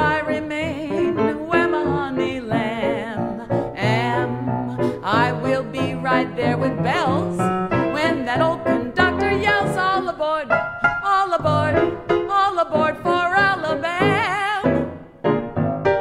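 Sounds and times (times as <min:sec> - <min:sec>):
woman singing with vibrato: 0:00.0 - 0:14.9
piano accompaniment: 0:00.0 - 0:16.0.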